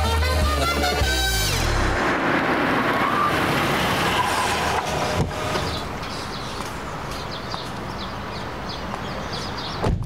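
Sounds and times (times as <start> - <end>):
car running: 1.2 - 8.8.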